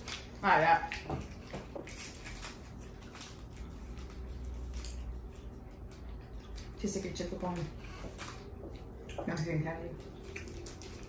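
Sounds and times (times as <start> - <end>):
low room hum: 0.0 - 11.0
wet chewing of candy: 0.0 - 11.0.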